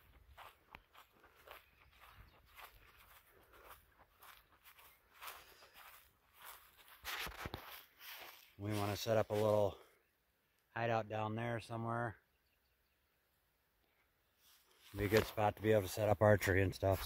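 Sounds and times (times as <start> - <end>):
rustling crunch: 0.0 - 9.8, 14.4 - 17.0
footsteps on dry grass: 0.0 - 9.9, 14.4 - 17.0.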